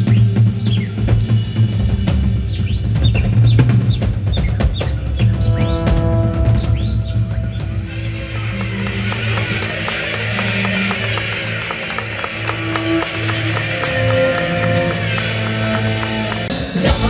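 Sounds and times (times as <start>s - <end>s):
bass guitar: 0.0s - 17.0s
drum kit: 0.0s - 17.0s
cymbal wash: 5.2s - 17.0s
electric guitar: 5.6s - 17.0s.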